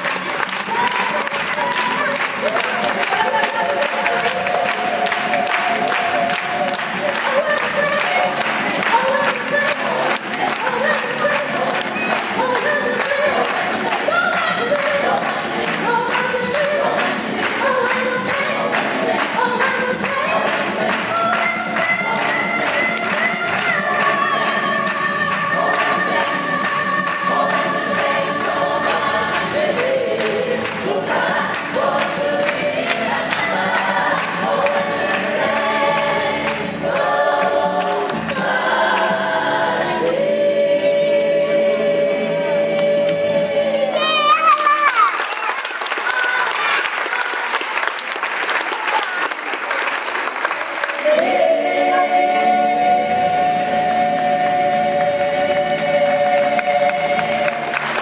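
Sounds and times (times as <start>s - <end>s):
people clapping: 0.0s - 40.2s, 44.0s - 58.0s
gospel choir singing: 0.0s - 44.0s, 50.8s - 58.0s.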